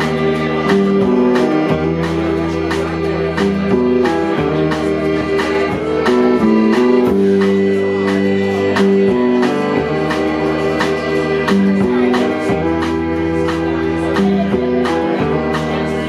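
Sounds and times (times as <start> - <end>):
drum kit steady beat: 0.0 - 16.0
piano accordion chords: 0.0 - 16.0.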